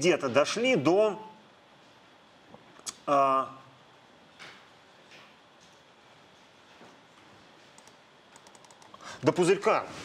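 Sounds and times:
quiet room hiss: 0.0 - 10.0
laptop clicking: 7.8 - 9.0.

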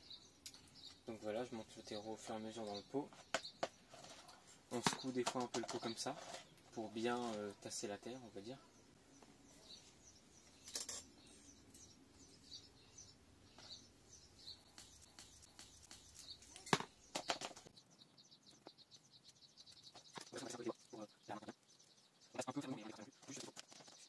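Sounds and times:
faint bird chirps: 0.0 - 24.0
trowel scraping potting soil: 2.6 - 7.6.

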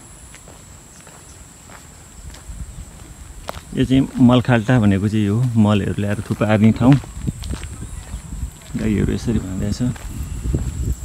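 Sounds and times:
footsteps on dirt path: 0.0 - 11.0
insects droning: 0.0 - 11.0.

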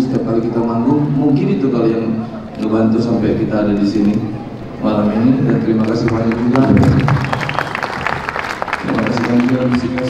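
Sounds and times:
audience applause: 5.2 - 10.0.

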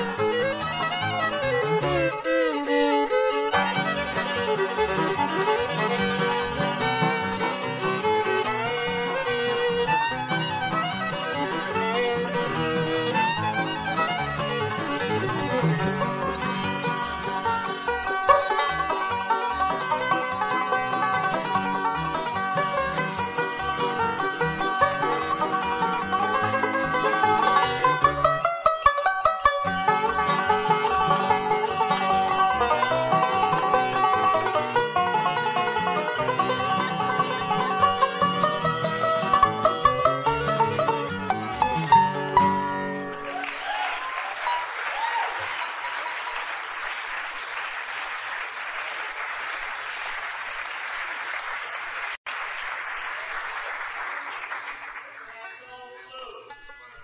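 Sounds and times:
guitar: 0.0 - 44.6
fiddle: 0.0 - 46.4
banjo: 0.0 - 46.6, 56.2 - 57.0.

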